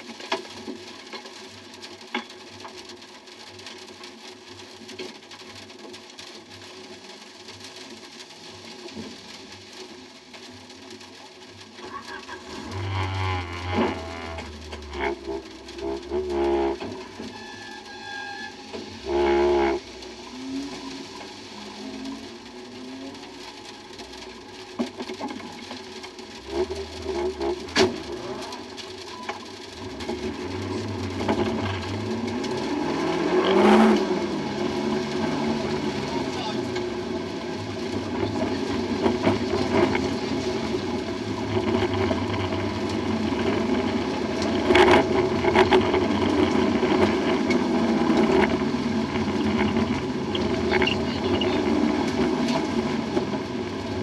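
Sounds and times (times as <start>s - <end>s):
car engine revving: 11.8s - 17.9s, 18.5s - 54.0s.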